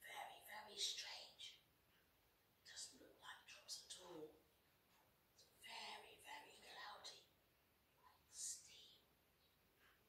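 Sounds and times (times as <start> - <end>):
woman whispering: 0.0 - 1.6, 2.6 - 4.4, 5.4 - 7.3, 8.0 - 9.2.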